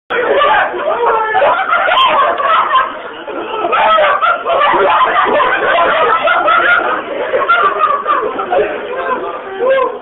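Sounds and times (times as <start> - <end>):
overlapping party chatter: 0.1 - 10.0
man laughing: 1.2 - 9.2.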